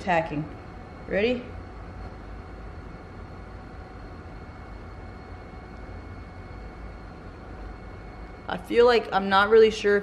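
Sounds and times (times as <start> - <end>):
aquarium pumps humming: 0.0 - 10.0
faint high whine: 0.0 - 10.0.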